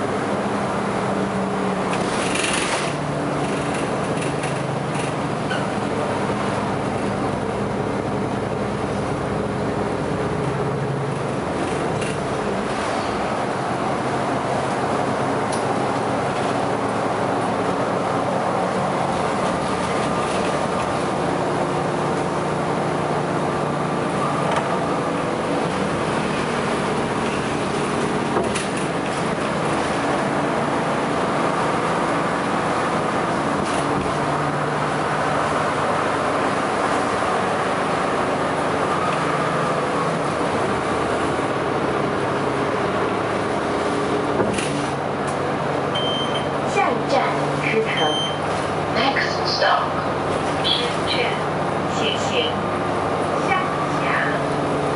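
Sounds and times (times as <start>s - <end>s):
bus drive and road hum: 0.0s - 54.9s.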